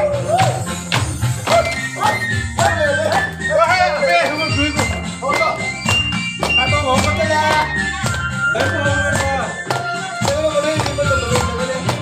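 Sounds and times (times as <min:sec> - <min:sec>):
person singing folk melody: 0:08.5 - 0:12.0.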